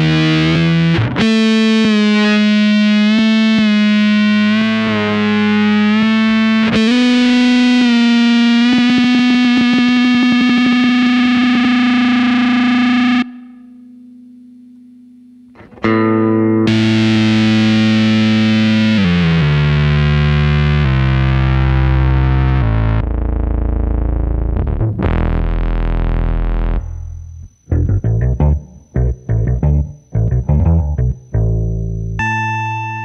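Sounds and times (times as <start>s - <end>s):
fuzzed electric guitar notes: 0.0s - 33.0s
faint low tone: 26.2s - 33.0s.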